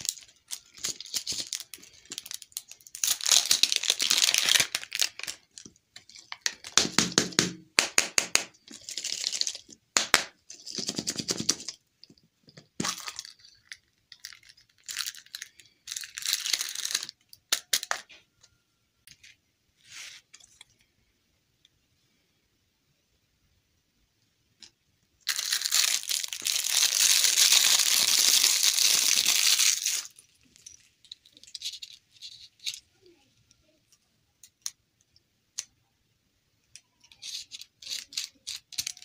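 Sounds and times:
plastic wrapper crinkling: 0.0s - 6.9s, 8.5s - 9.8s, 25.2s - 32.8s.

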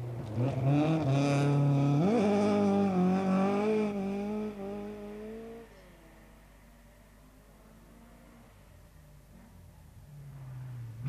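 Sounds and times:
rally car engine revving: 0.0s - 5.9s.

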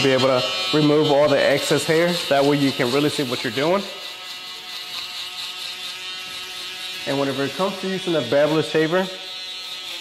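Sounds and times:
electric hair trimmer buzzing: 0.0s - 10.0s.

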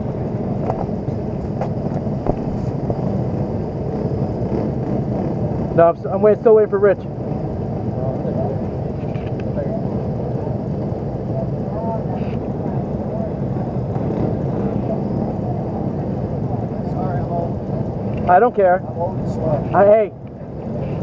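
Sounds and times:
low rumbling noise: 0.0s - 21.0s
faint voices: 7.8s - 21.0s.

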